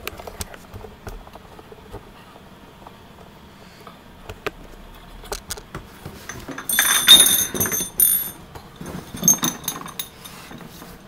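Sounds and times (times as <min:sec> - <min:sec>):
glass bottles clinking: 0:06.2 - 0:10.8.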